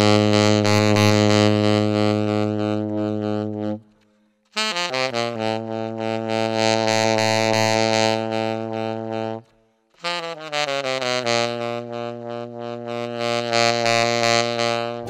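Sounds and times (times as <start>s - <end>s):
tenor saxophone playing: 0.0s - 15.0s.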